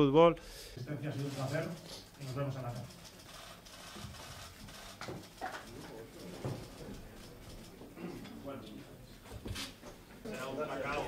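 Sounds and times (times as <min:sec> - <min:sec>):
murmur of voices: 0:04.7 - 0:11.0.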